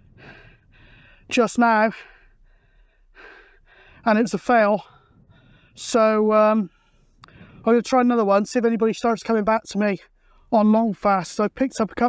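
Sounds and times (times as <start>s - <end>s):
man breathing in: 0.0s - 1.3s, 2.0s - 4.1s, 4.8s - 5.8s, 6.7s - 7.7s.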